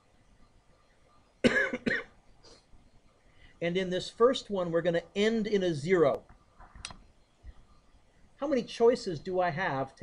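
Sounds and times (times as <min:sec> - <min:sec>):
person coughing: 0:01.4 - 0:02.2.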